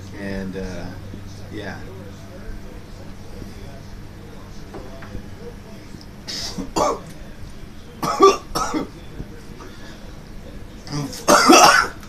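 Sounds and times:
man coughing: 0:06.3 - 0:07.1, 0:08.0 - 0:09.0, 0:11.2 - 0:12.0.

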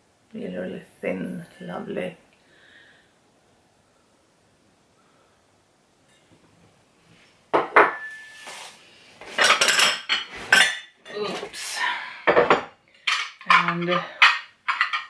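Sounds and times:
glass dishes clinking: 0:07.6 - 0:08.4, 0:09.4 - 0:11.0, 0:12.3 - 0:15.0.

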